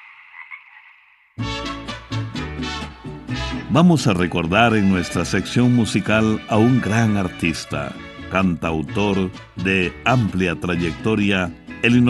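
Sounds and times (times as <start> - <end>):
toad calling: 0.0 - 1.4
music: 1.4 - 12.0.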